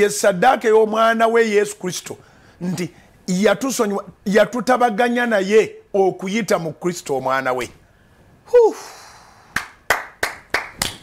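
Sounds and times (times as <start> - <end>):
men clapping hands: 9.6 - 11.0.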